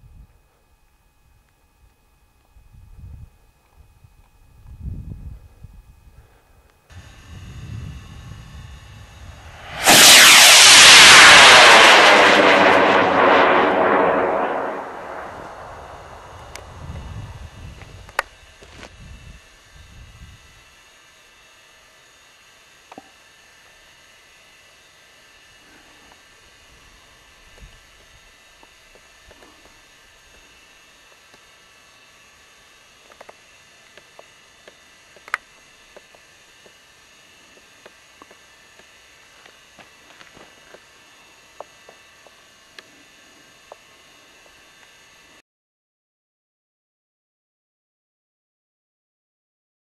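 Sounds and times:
rocket motor roaring: 6.9 - 20.6.

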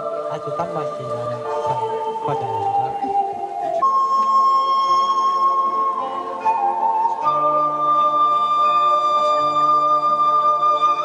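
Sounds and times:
slow instrumental melody: 0.0 - 11.0.

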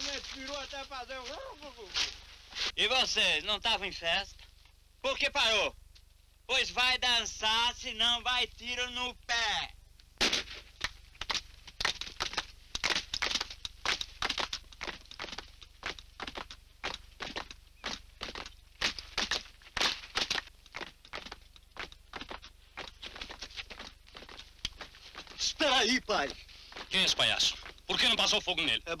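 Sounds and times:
feet stamping on grassy ground: 10.6 - 28.4.

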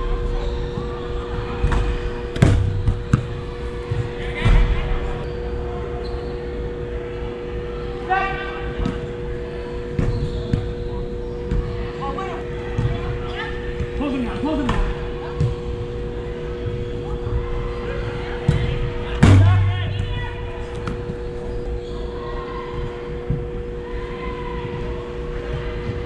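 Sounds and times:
steady hum: 0.0 - 10.0, 18.9 - 25.8
ball kicked on artificial turf: 2.4 - 4.1
players calling out: 17.4 - 21.4.

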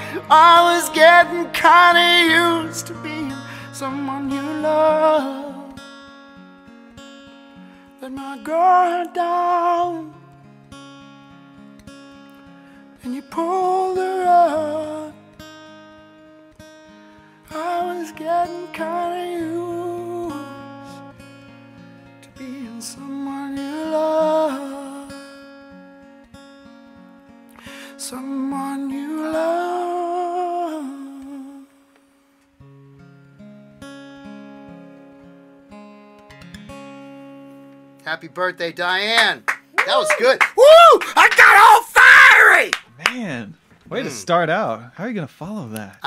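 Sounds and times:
man singing long wordless note: 0.0 - 5.7
acoustic guitar strumming: 0.0 - 42.0.

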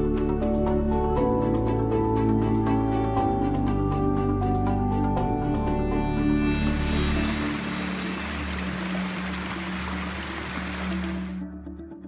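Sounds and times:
background music low notes: 0.0 - 12.0
stream rushing over rocks: 7.3 - 11.4.

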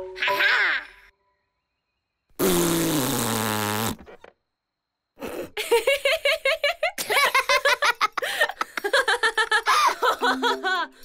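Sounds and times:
cartoon fart sound effect: 2.4 - 4.2.

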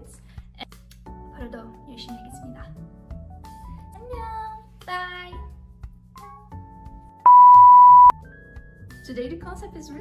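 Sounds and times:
soft background music: 0.0 - 10.0
high electronic beep: 7.3 - 8.1.

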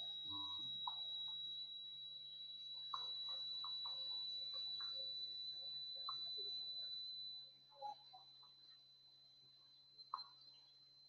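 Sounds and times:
faint high-pitched whine: 0.0 - 11.0.

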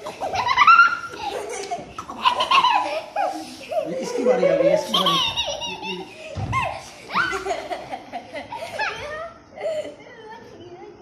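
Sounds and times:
children laughing and squealing: 0.0 - 10.5.

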